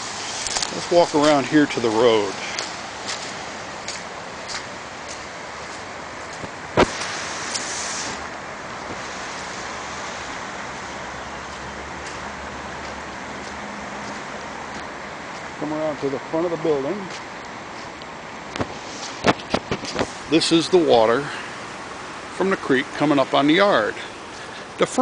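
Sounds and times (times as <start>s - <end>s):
creek floodwater rushing: 0.0s - 25.0s
faint footfalls: 2.4s - 7.0s, 11.4s - 15.6s.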